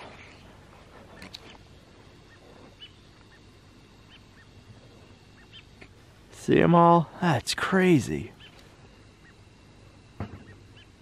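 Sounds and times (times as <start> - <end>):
faint short bird calls: 2.2 - 6.0, 10.3 - 11.0.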